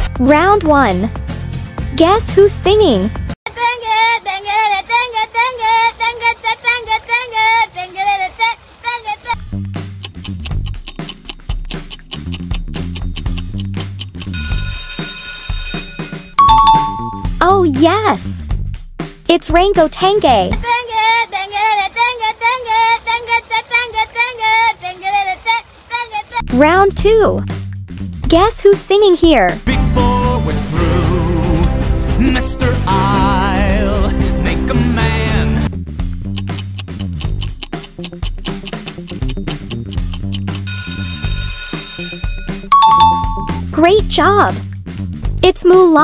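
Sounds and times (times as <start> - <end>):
child singing in a high voice: 3.5 - 9.4, 20.6 - 26.4
looping bass music: 9.5 - 14.4, 36.2 - 40.7
rapid clock ticking: 9.9 - 15.0, 36.3 - 42.6
alarm bell ringing: 14.0 - 17.2, 40.1 - 43.6
two-note chime: 16.4 - 17.2, 42.7 - 43.6.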